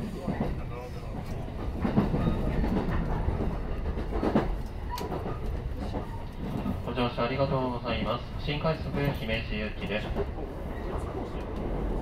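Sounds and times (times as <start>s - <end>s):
train low rumble: 0.0s - 12.0s.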